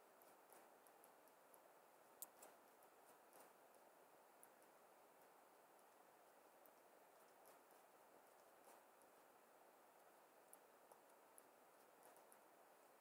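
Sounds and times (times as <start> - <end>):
faint room hiss: 0.0 - 13.0.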